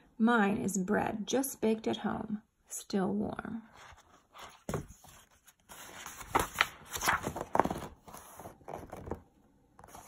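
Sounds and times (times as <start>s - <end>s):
paper page rustling: 3.8s - 10.0s.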